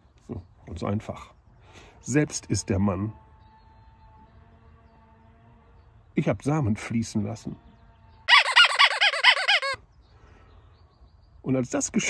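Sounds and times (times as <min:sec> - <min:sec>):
comic high-pitched call: 0:08.3 - 0:09.8.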